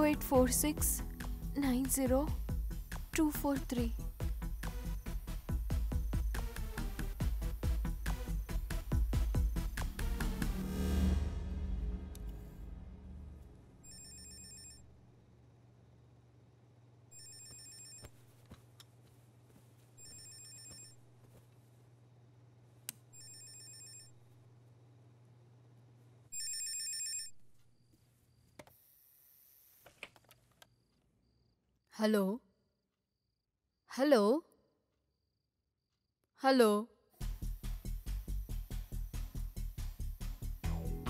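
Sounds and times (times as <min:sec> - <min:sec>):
low steady hum: 0:09.4 - 0:17.1
telephone ringing with electronic trill: 0:13.8 - 0:14.8, 0:17.2 - 0:18.1.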